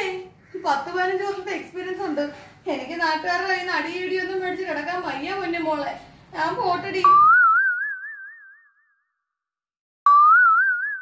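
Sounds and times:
cartoon boing: 0:07.0 - 0:09.0, 0:10.1 - 0:11.0.

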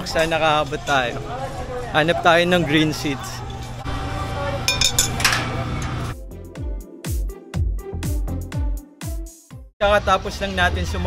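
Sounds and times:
murmur of voices: 0:00.0 - 0:06.1
swing chains clinking and rattling: 0:04.7 - 0:06.2.

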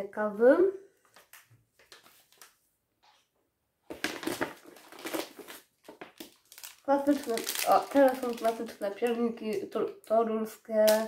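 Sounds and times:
food packaging crinkling: 0:03.9 - 0:09.7.

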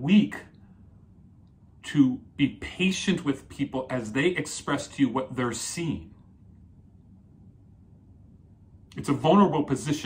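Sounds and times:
man talking: 0:00.0 - 0:00.6, 0:01.8 - 0:06.2, 0:08.9 - 0:10.0.

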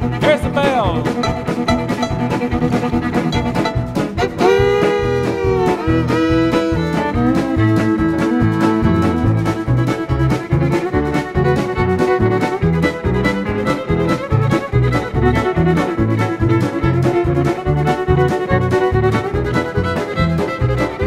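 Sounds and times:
country fiddle: 0:00.0 - 0:21.0
western swing band: 0:00.0 - 0:21.0.

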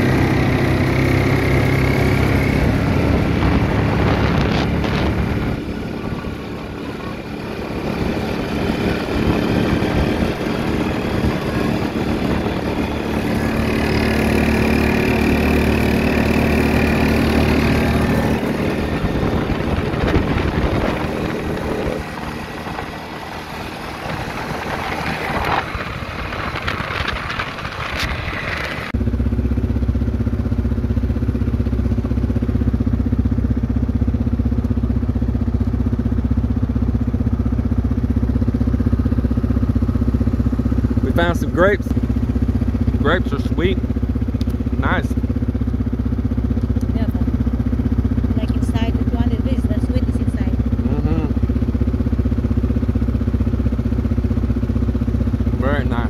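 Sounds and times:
small vehicle engine running: 0:00.0 - 0:56.0.

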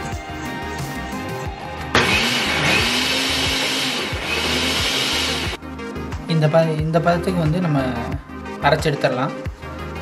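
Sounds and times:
mixer grinder motor running: 0:01.9 - 0:05.6.

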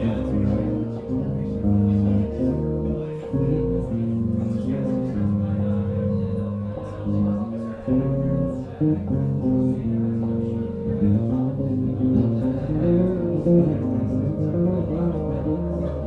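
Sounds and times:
electric bass playing: 0:00.0 - 0:16.0.

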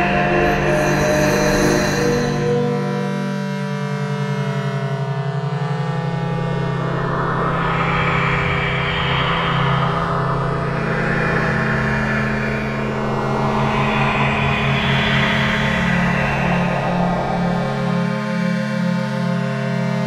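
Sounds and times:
sustained low drone: 0:00.0 - 0:20.0
hiss-like upper layer: 0:06.0 - 0:18.8.

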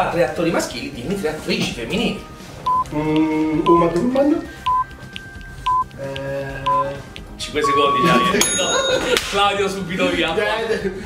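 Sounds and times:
faint ticking: 0:02.6 - 0:07.8
timer beeping: 0:02.6 - 0:10.6.

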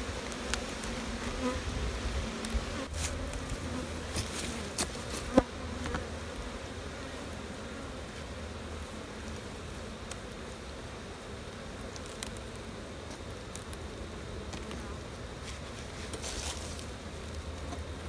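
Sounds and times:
honeybees humming: 0:00.0 - 0:18.0.

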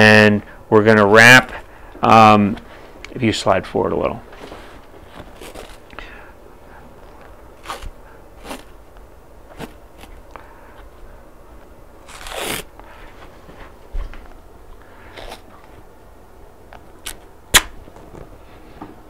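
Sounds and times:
tape crinkling and scraping: 0:04.3 - 0:06.0, 0:07.1 - 0:08.8, 0:12.0 - 0:12.8
tape pulled off roll rasp: 0:12.0 - 0:12.7.

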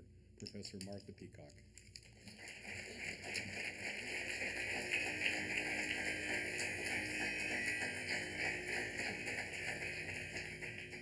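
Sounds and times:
audience applauding: 0:02.0 - 0:11.0.

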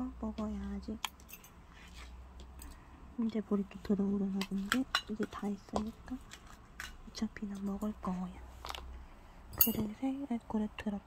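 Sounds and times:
low steady hum: 0:00.0 - 0:11.0
metal ladle clinking on pot: 0:09.6 - 0:09.9.

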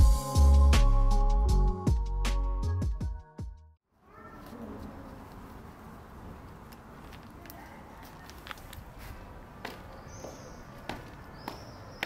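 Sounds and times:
faint outdoor background noise: 0:03.9 - 0:12.0.

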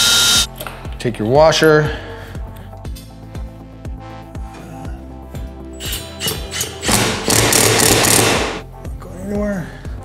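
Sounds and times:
cordless drill driving screw: 0:00.0 - 0:00.5
background music with steady beat: 0:00.0 - 0:10.0.

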